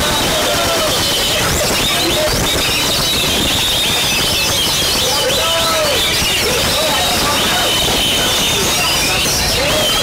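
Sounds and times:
loud background noise: 0.0s - 10.0s
birds singing: 0.9s - 10.0s.

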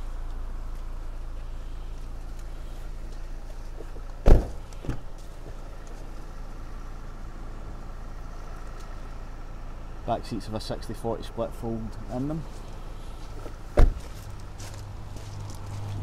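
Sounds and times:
steady low hum: 0.0s - 16.0s
car door shutting: 3.8s - 5.2s, 13.4s - 14.3s.

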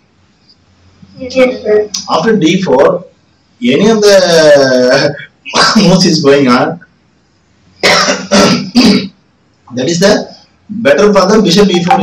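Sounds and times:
person coughing: 7.8s - 9.1s.

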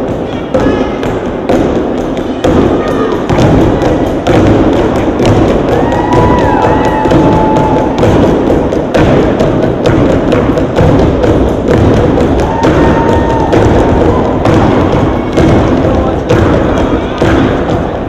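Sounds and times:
music: 0.0s - 18.0s
rhythmic stomping: 0.0s - 18.0s.

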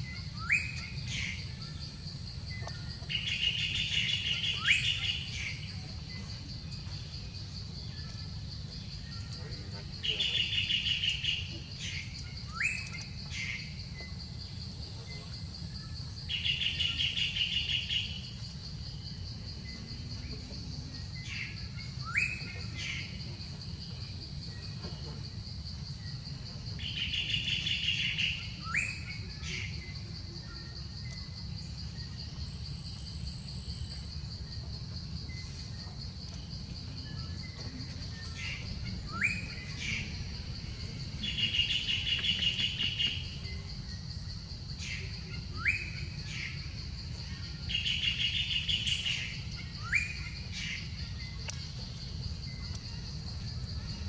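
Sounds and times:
birds calling with whistles: 0.0s - 1.6s, 2.5s - 7.0s, 9.0s - 14.2s, 37.4s - 40.4s, 41.2s - 44.0s, 44.8s - 46.7s, 47.7s - 51.8s
insect drone: 0.0s - 54.0s.

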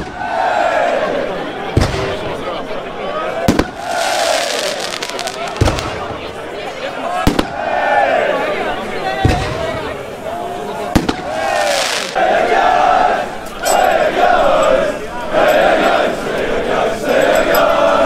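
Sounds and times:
crowd chanting: 0.0s - 18.0s
firecrackers banging: 1.7s - 2.4s, 3.4s - 7.7s, 9.1s - 12.2s.

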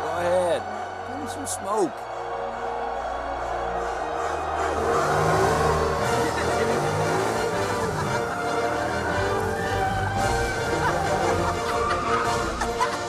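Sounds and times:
film score music: 0.0s - 13.0s
tyres spinning on track: 0.0s - 13.0s
race car engine revving: 4.3s - 13.0s.

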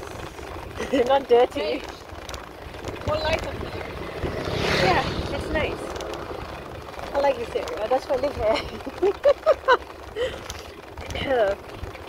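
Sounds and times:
wind buffeting microphone: 1.8s - 9.1s
voice or laughter: 8.5s - 10.6s.

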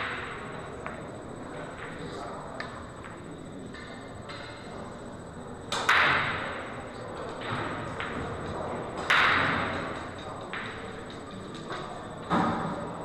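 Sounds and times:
pool balls rolling rattle: 5.8s - 13.0s.

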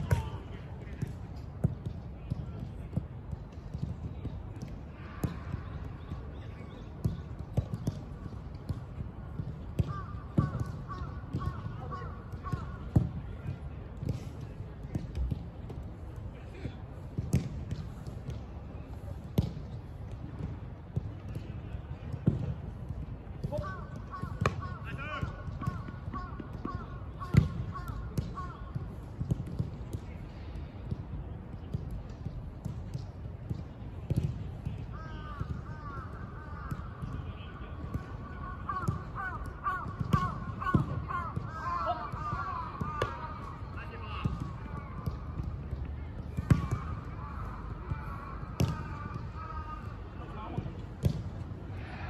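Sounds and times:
football kick thuds: 48.5s - 49.0s, 50.5s - 51.4s.

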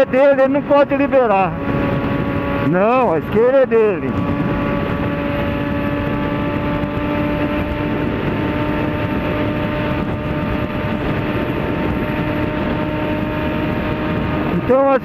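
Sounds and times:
motorcycle engine droning: 0.0s - 15.0s
wind and road rush: 0.0s - 15.0s.

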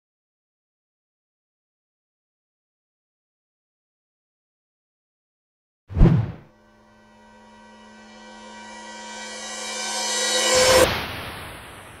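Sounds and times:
noisy whoosh: 5.9s - 12.0s
synthesized chord: 6.4s - 11.0s.

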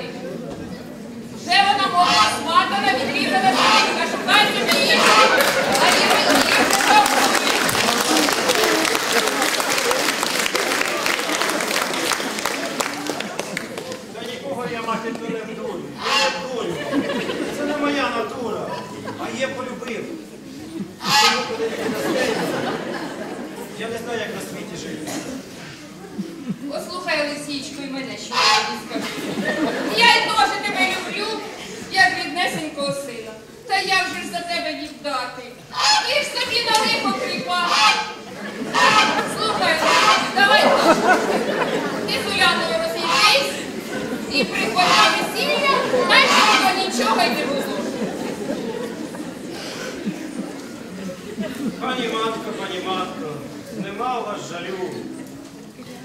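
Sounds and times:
actors speaking dialogue: 1.2s - 7.4s, 14.0s - 21.7s, 22.3s - 49.0s.

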